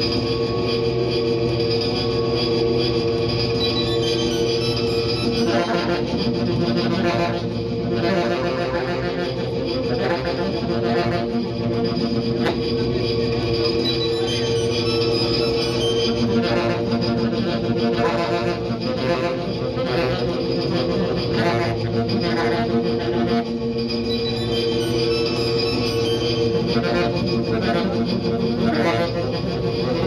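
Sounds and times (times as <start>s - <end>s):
saxophone drone through effects: 0.0s - 30.0s.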